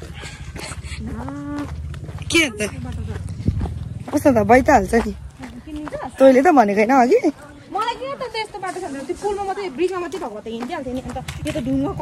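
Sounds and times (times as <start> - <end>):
low rumble: 0.0 - 5.3.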